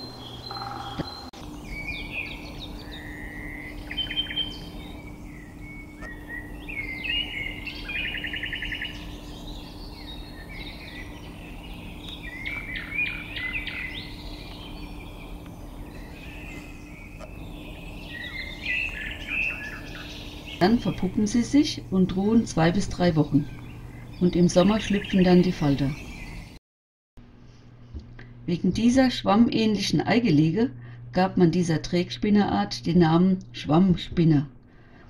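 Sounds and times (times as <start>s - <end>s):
songbirds singing: 0.0s - 26.6s
steady low hum: 0.0s - 26.6s, 27.2s - 35.0s.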